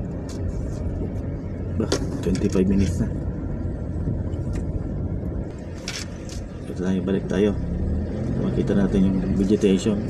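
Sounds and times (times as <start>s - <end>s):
car engine rumble: 0.0s - 10.0s
tyres on road: 0.0s - 10.0s.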